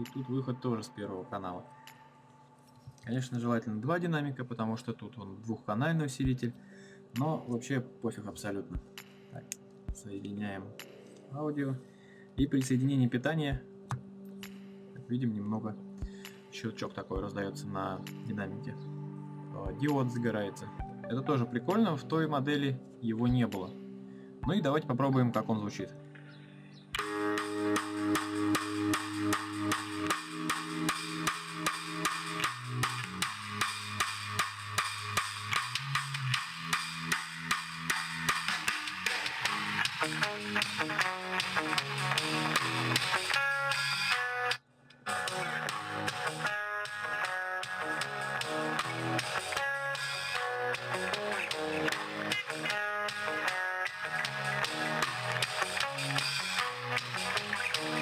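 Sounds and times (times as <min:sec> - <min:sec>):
guitar music through a loudspeaker: 0:37.9 - 0:58.0.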